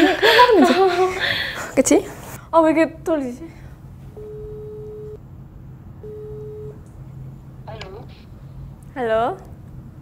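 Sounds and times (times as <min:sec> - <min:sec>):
telephone ringback tone: 0:04.2 - 0:05.2, 0:06.0 - 0:06.8.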